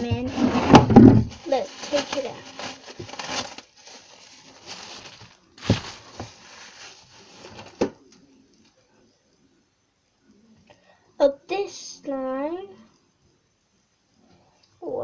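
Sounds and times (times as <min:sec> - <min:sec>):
plastic bag crinkling: 0:00.7 - 0:08.0.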